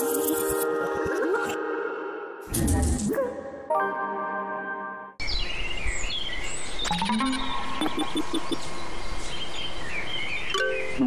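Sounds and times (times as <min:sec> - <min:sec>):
birds chirping: 0:05.2 - 0:11.0
outdoor background hiss: 0:08.6 - 0:11.0.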